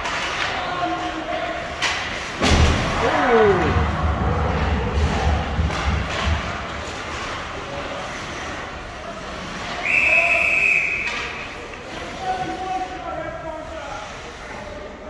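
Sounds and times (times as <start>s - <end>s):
ice rink noise: 0.0s - 15.0s
low thumps: 2.4s - 6.8s
referee's whistle blast: 9.8s - 11.3s.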